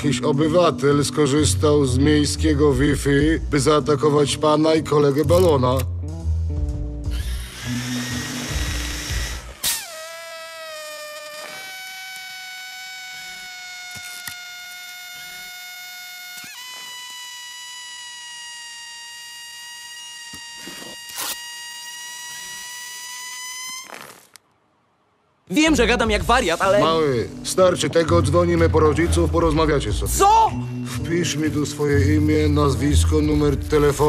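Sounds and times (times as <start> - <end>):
high-pitched whistle: 7.1 - 24.4, 30.2 - 32.2
air hissing from puncture: 7.2 - 24.4.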